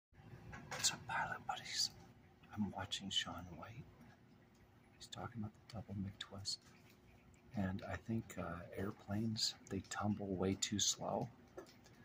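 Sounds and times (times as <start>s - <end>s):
man whispering: 0.7s - 4.0s, 5.0s - 6.7s.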